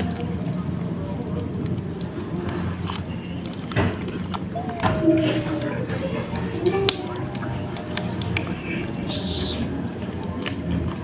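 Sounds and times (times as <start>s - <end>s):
kittens chewing with wet mouth clicks: 0.0s - 11.0s.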